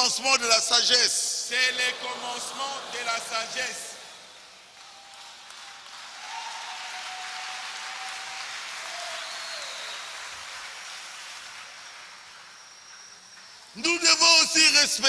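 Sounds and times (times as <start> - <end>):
congregation applauding: 1.5 - 15.0.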